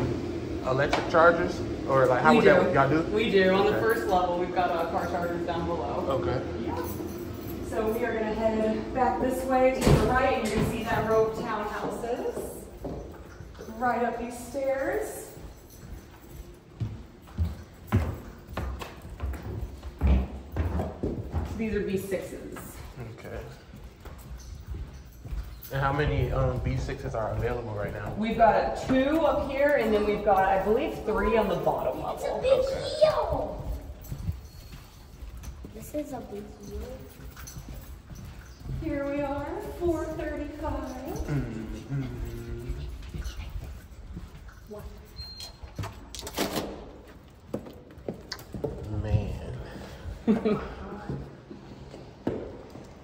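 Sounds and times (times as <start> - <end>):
person humming: 41.3 - 42.9.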